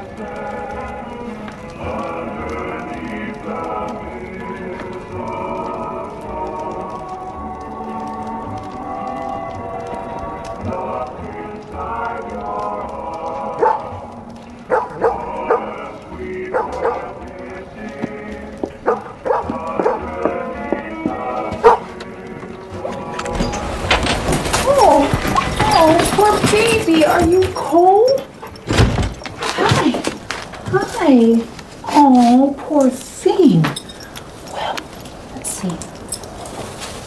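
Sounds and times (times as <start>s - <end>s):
background music with held notes: 0.0s - 29.6s
dog barking and whining: 13.6s - 13.9s, 14.6s - 15.7s, 18.8s - 20.1s.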